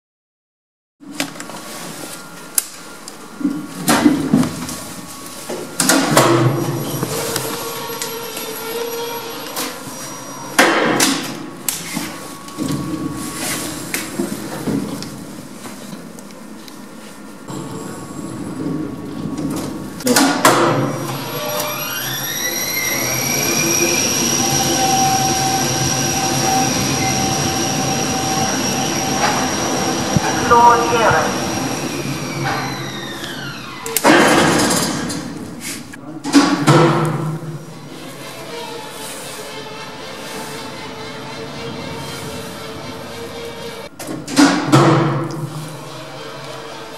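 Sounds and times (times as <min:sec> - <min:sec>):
lift motor whine: 0:20.9 - 0:34.0
rushing noise in lift shaft: 0:21.0 - 0:33.8.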